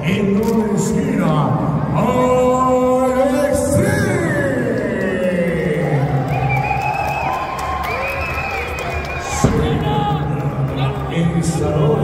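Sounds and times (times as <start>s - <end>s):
crowd cheering: 2.0s - 12.0s.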